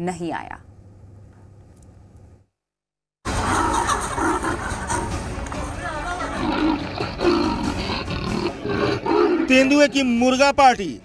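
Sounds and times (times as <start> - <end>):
leopard roaring calls: 3.4 - 5.1, 6.3 - 9.5.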